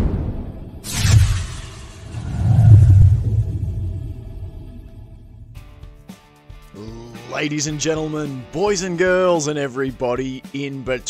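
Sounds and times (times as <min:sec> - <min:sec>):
deep rumbling boom: 0:00.0 - 0:06.0
sharp crack: 0:00.8 - 0:04.1.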